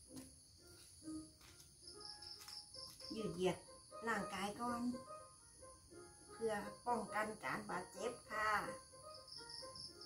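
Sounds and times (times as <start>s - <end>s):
quick insect chirps: 0.1s - 4.0s, 8.7s - 10.0s
insect trilling: 1.8s - 10.0s.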